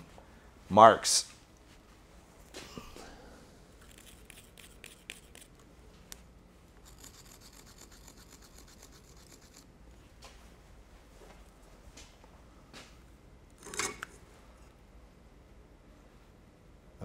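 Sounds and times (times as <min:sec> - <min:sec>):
marking tool scratching steel: 0:06.8 - 0:09.7.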